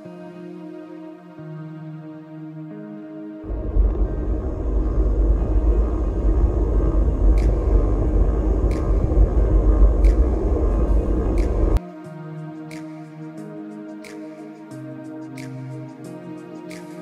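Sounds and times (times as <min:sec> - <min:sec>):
road noise: 0:03.4 - 0:11.8
wind rushing over microphone: 0:03.4 - 0:11.8.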